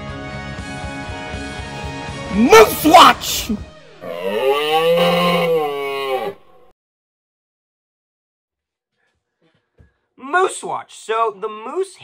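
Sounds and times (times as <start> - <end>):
moose call bellow: 4.0 - 6.7.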